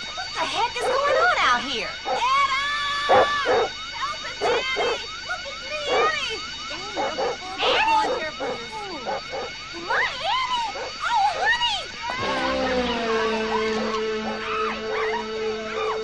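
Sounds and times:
steady high tones: 0:00.0 - 0:16.0
dog yelping and whining: 0:13.4 - 0:16.0.

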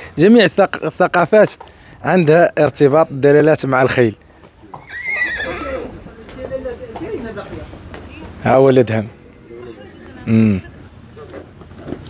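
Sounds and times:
horse whinnying: 0:04.7 - 0:06.0.

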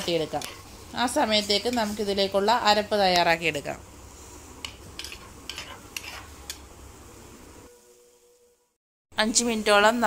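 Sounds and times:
faint sizzle: 0:00.0 - 0:10.0.

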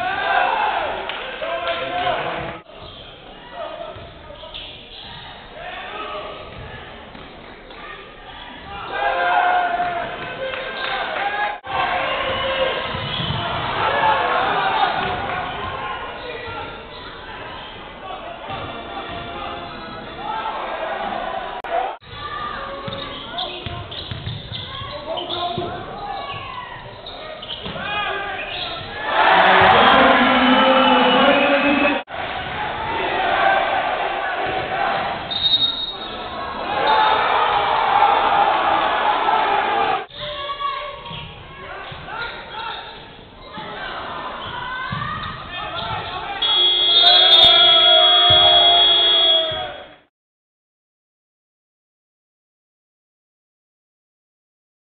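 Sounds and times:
voices in a large hall: 0:00.0 - 0:50.1
buzzer horn: 0:29.3 - 0:32.0, 0:46.4 - 0:49.6.

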